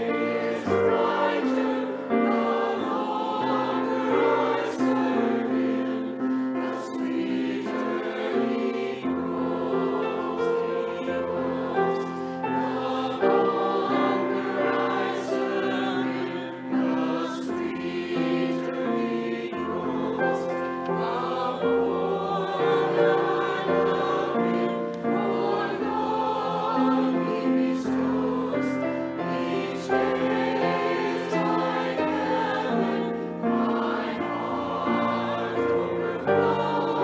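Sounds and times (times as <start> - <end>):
choir singing slow held notes: 0.0 - 37.0.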